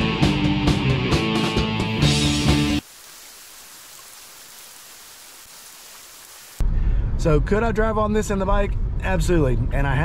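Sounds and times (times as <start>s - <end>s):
steady hiss: 2.8s - 6.6s.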